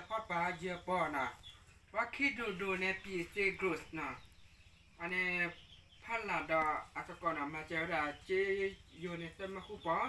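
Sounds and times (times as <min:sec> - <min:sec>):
man reading aloud: 0:00.0 - 0:04.4, 0:05.0 - 0:10.0.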